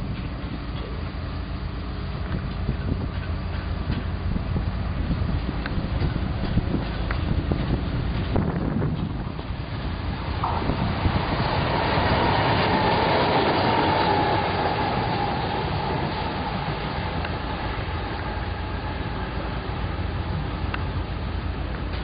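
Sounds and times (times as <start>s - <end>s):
train wheels rumbling on rail: 0.0s - 22.0s.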